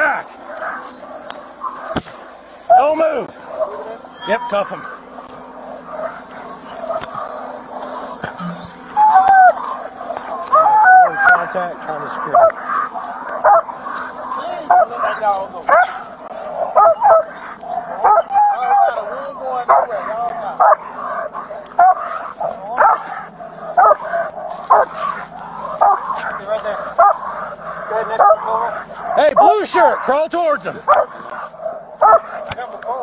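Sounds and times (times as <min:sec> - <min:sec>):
dog barking: 0:00.0 - 0:02.2, 0:05.6 - 0:33.0.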